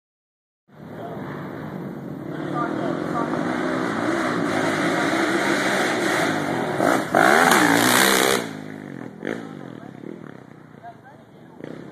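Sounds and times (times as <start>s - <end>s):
motorcycle engine revving: 0.8s - 11.9s.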